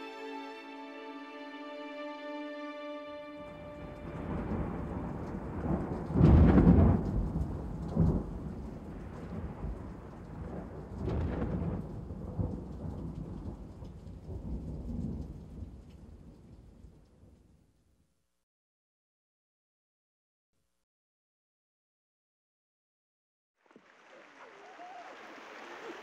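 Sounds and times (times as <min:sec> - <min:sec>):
thunder rumbling: 0:03.5 - 0:17.0
sharp thunder crack: 0:04.0 - 0:13.6.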